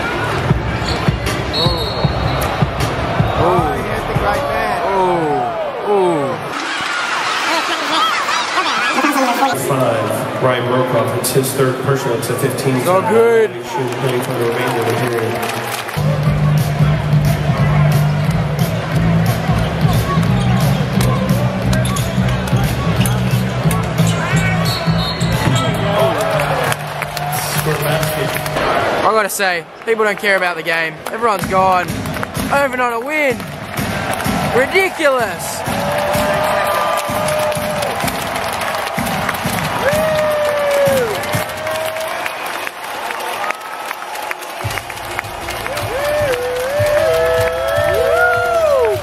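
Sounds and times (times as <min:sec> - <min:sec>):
crowd noise: 0:00.0 - 0:49.0
voices in an arena: 0:00.0 - 0:49.0
sneakers squeaking: 0:20.3 - 0:26.0
arena music: 0:31.1 - 0:42.1.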